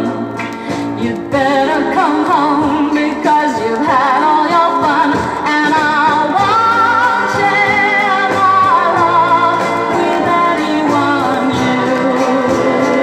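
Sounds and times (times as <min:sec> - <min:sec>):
pop song with female vocal: 0:00.0 - 0:13.0.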